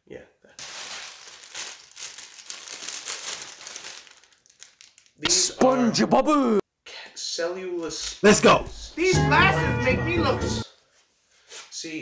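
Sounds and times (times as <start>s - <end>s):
plastic bag crinkling: 0.6s - 5.2s.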